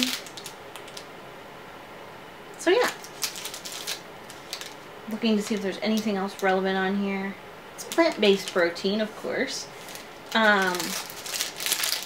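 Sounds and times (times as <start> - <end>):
plastic wrapper crinkling: 0.0 - 1.1, 2.8 - 6.5, 7.8 - 12.0.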